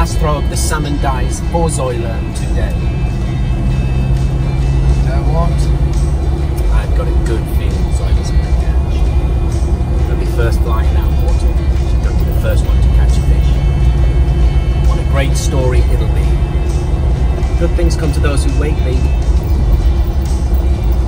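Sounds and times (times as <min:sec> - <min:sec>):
background music: 0:00.0 - 0:21.0
vehicle engine and road drone: 0:00.0 - 0:21.0.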